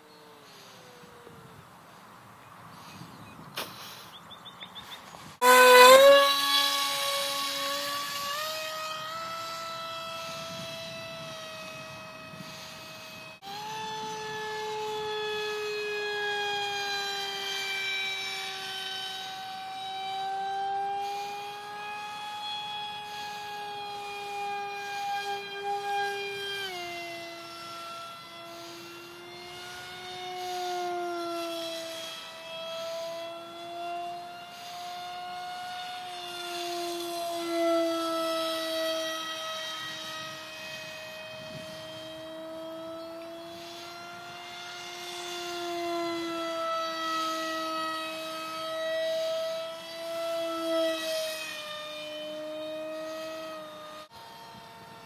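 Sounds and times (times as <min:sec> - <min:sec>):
electric motor propeller whine: 0:00.0 - 0:55.0.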